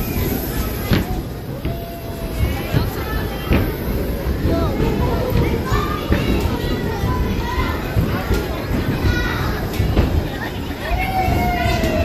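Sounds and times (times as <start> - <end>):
children chattering and squealing: 0.0 - 12.0
low rumble of spinning ride: 0.0 - 12.0.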